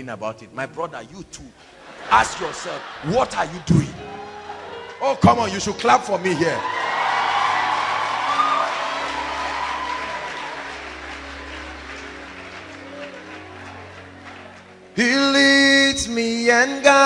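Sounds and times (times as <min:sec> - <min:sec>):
soft background music: 0:00.0 - 0:17.0
congregation applauding: 0:02.0 - 0:17.0.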